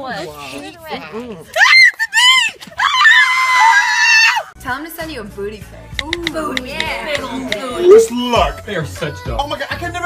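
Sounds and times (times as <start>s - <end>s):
person screaming high-pitched: 7.8s - 8.1s.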